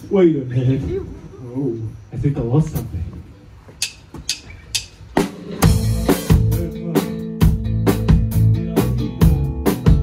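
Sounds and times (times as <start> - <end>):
drumstick count-in clicks: 3.8 - 5.1
rock band playing: 4.7 - 10.0.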